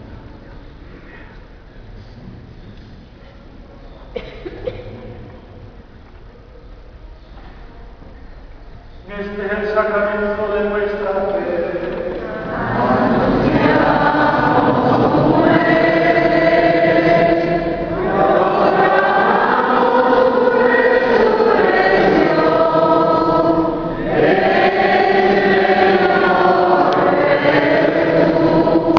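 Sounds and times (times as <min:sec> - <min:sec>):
group singing a hymn: 0:09.4 - 0:28.9.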